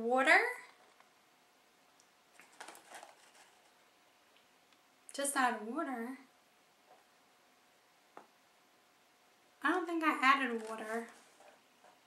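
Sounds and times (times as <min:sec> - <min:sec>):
faint handling sounds: 0:02.0 - 0:04.5, 0:10.4 - 0:12.0.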